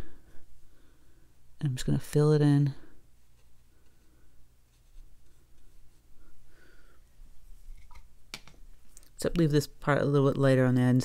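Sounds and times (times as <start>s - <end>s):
low steady hum: 0.0s - 11.0s
brush scratching on paper: 4.7s - 6.0s.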